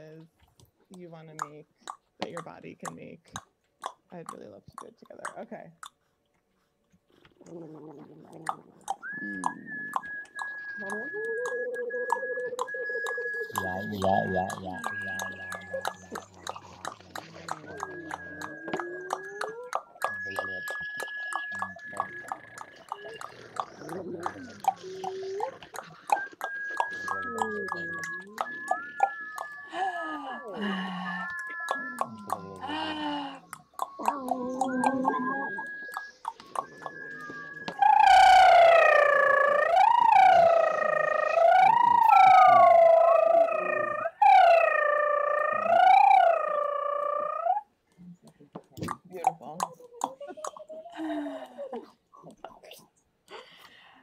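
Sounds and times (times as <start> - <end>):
sharp mouth clicks: 0.9 - 6.1, 7.1 - 29.8, 30.8 - 38.0, 47.9 - 50.8
sliding voiced hoots and calls: 8.0 - 47.7
long held whistle: 9.0 - 16.6, 20.0 - 22.4, 26.0 - 32.8, 34.8 - 47.6.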